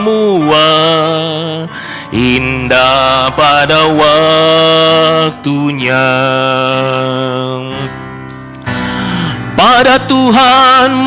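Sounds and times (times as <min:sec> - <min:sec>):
man singing a long held note: 0:00.0 - 0:07.9.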